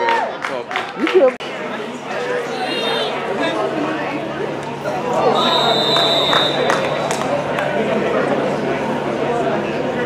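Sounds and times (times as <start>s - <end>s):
voices chattering: 1.1s - 10.0s
referee's whistle: 2.5s - 3.2s, 5.2s - 7.3s.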